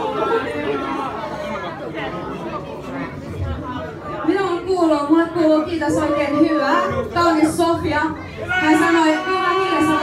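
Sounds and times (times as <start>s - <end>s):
people chattering in a room: 0.0s - 10.0s.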